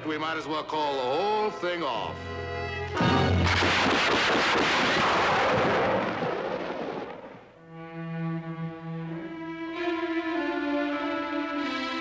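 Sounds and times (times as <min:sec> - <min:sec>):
gunshot echo: 0:03.0 - 0:07.6.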